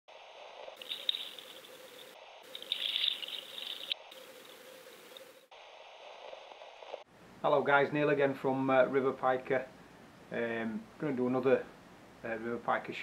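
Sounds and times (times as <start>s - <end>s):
steady hiss: 0.1s - 8.7s
high chirping: 0.8s - 5.4s.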